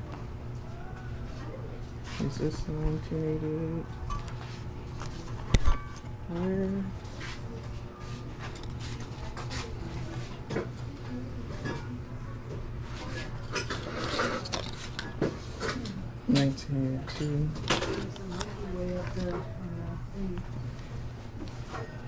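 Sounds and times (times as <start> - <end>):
person talking: 6.3 - 7.0.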